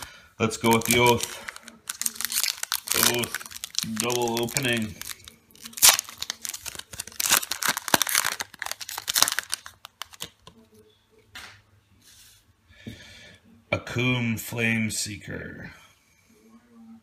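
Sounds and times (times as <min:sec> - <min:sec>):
foil wrapper tearing and crinkling: 0:00.6 - 0:10.5.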